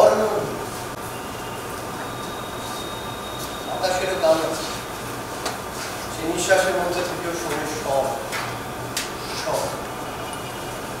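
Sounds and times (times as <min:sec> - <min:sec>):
man talking: 0:00.0 - 0:00.7, 0:03.7 - 0:04.8, 0:06.1 - 0:08.3, 0:09.4 - 0:09.8
faint high whine: 0:00.0 - 0:05.2.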